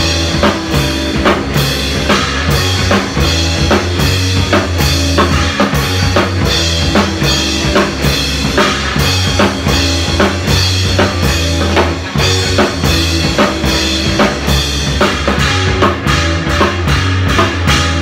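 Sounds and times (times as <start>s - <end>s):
drum kit played hard: 0.0s - 18.0s
rock band playing: 0.0s - 18.0s.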